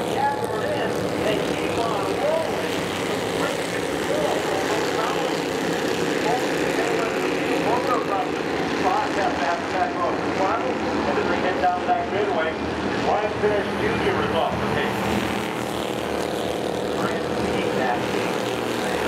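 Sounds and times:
race car engines at speed: 0:00.0 - 0:19.0.

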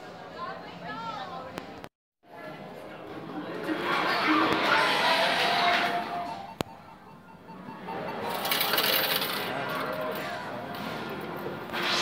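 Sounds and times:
ticket machine whirring and rattling: 0:07.7 - 0:10.3.

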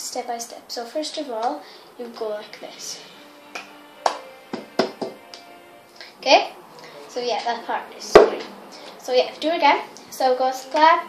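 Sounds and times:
hand claps: 0:03.5 - 0:05.5.

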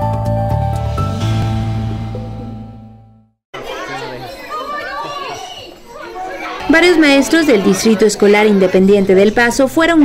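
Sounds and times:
children talking: 0:03.5 - 0:10.0.

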